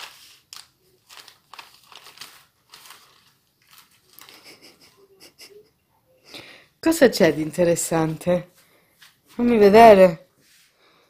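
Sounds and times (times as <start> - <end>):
newspaper pages rustling: 0.0 - 4.7.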